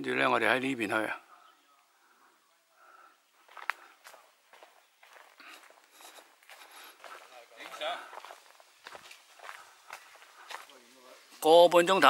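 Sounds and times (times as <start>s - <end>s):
footsteps on dirt and gravel: 3.4s - 11.5s.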